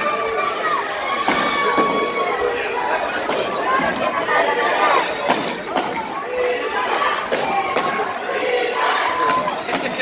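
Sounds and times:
children shouting: 0.0 - 10.0
crowd shouting and cheering: 0.0 - 10.0.

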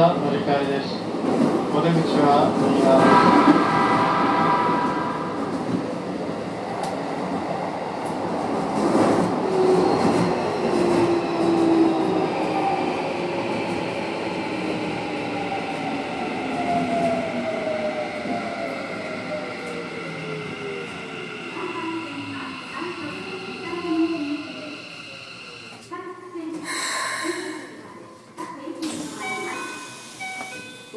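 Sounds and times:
subway train motor whine: 8.8 - 25.9.

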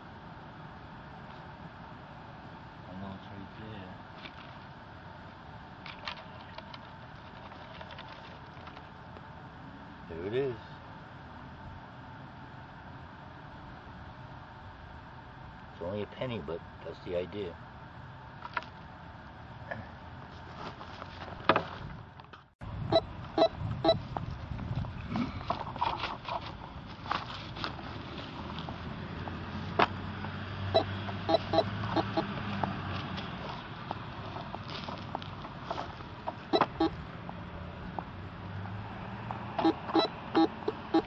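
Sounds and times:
metal detector beeping: 22.9 - 24.0, 30.7 - 32.3, 36.5 - 37.0, 39.6 - 41.0.

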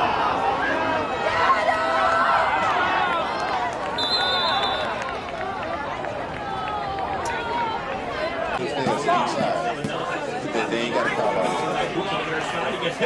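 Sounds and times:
crowd talking and shouting: 0.0 - 13.0
trilled referee's whistle: 4.0 - 5.0.

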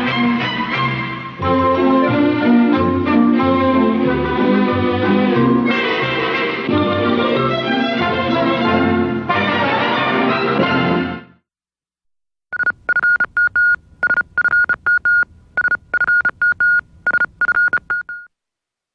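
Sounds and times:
high electronic beeps: 12.5 - 18.3.

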